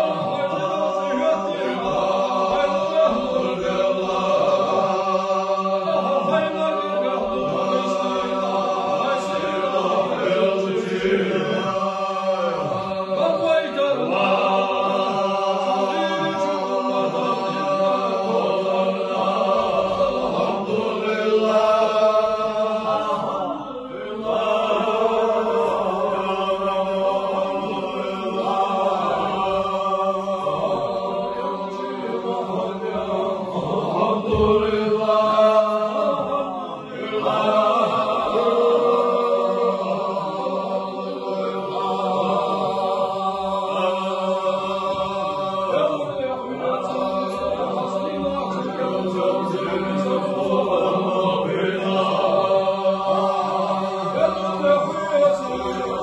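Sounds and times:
men chanting together: 0.0 - 56.0.

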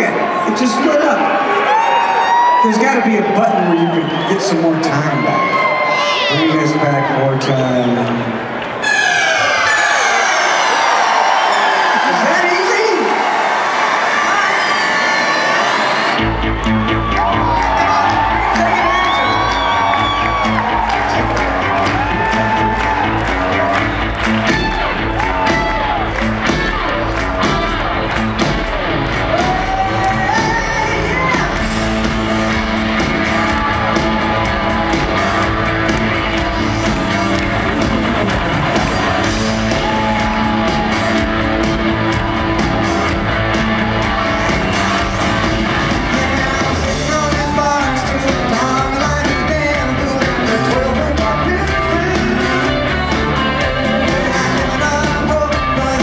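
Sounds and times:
crowd cheering: 0.0 - 56.0
rock band playing: 15.6 - 56.0.

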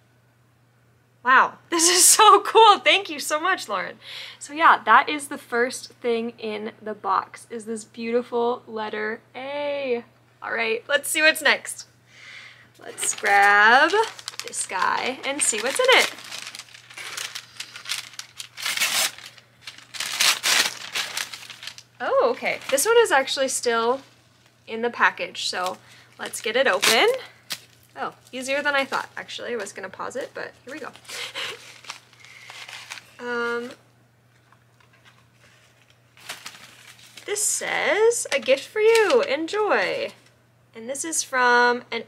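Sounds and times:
wrapping paper tearing and crinkling: 12.8 - 24.5, 25.4 - 33.8, 34.8 - 37.5, 38.3 - 40.1
package rustling and clicking: 12.9 - 21.9, 28.8 - 33.2, 34.3 - 37.3.

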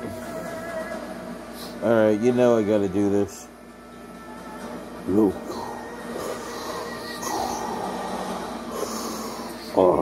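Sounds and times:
faint machine hum: 0.0 - 10.0
heavy breathing through a mask: 5.5 - 9.8.

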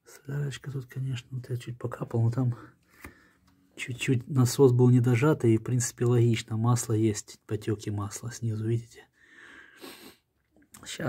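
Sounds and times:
faint breath: 2.6 - 3.6, 9.2 - 10.3.

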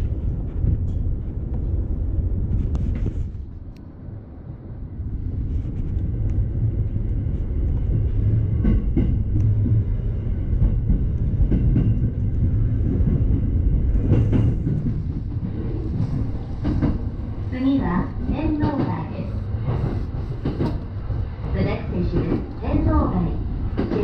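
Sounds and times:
train low rumble: 0.0 - 24.0
train wheel clacks: 18.0 - 20.9, 23.8 - 24.0.

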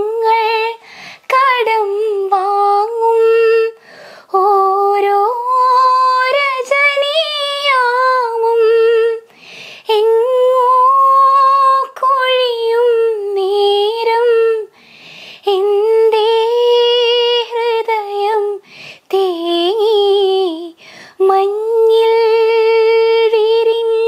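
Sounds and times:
woman singing unaccompanied: 0.0 - 14.8, 15.4 - 24.0.

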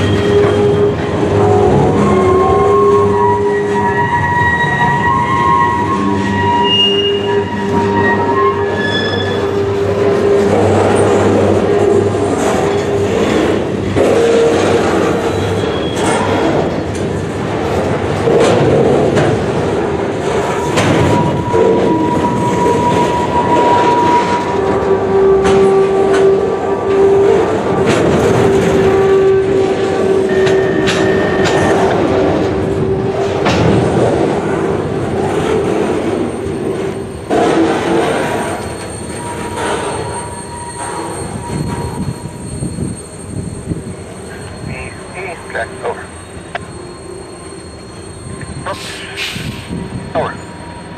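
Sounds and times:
metallic wheel squeals: 0.0 - 17.0, 20.2 - 33.4, 35.9 - 50.9
train wheels rumbling on rail: 0.0 - 50.9.

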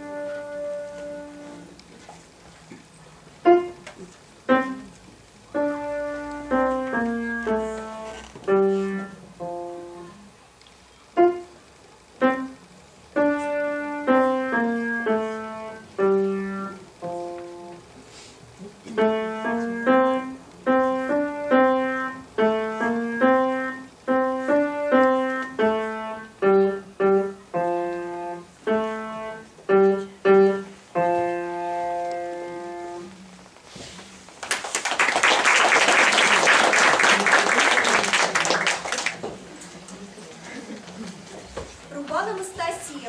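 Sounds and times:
grand piano playing: 0.0 - 1.8, 3.4 - 3.8, 4.4 - 10.2, 12.2 - 17.9, 19.0 - 33.4
audience applauding: 34.4 - 39.6.

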